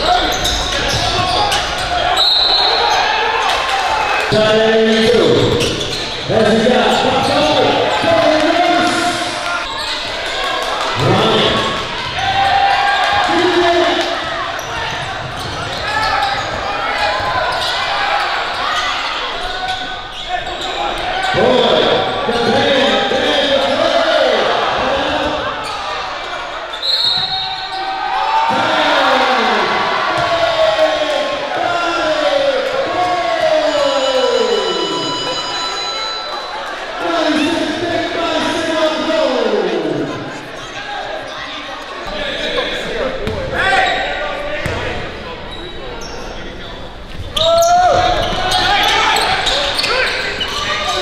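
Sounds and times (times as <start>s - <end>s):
shoe squeak: 0.0s - 3.1s, 5.0s - 7.6s, 9.6s - 10.4s, 14.6s - 21.4s, 26.6s - 28.0s, 33.8s - 36.7s, 45.5s - 51.0s.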